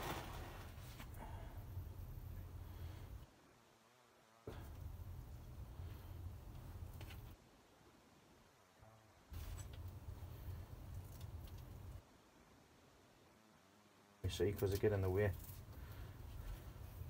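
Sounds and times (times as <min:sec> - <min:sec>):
leaves rustling by hand: 0:00.0 - 0:01.1.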